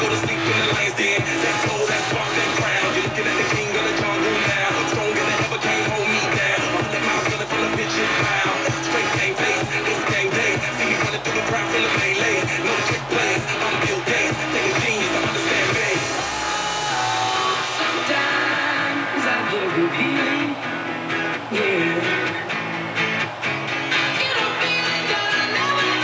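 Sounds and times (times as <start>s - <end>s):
pop song on radio: 0.0s - 26.0s.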